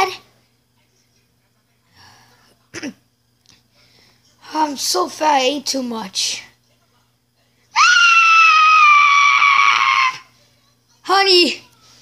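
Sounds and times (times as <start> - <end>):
child screaming: 7.8 - 10.3.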